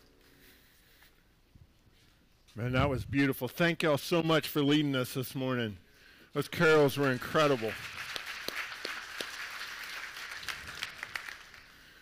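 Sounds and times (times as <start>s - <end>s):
congregation applauding: 6.5s - 12.0s.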